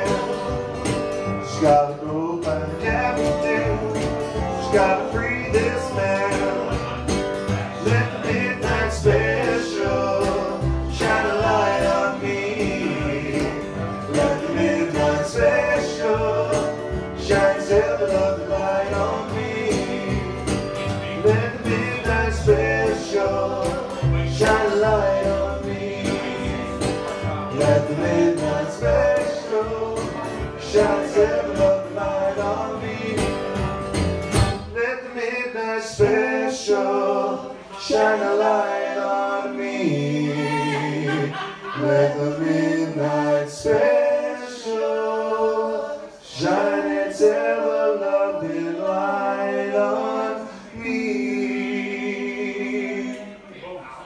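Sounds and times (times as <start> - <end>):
men singing in harmony: 0.0 - 33.8, 34.8 - 53.3
plucked double bass: 0.0 - 34.8
strummed acoustic guitar: 0.0 - 35.0.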